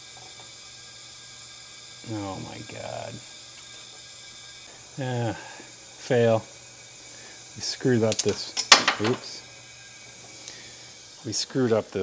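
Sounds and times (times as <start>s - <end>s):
compressed air hissing: 0.0s - 12.0s.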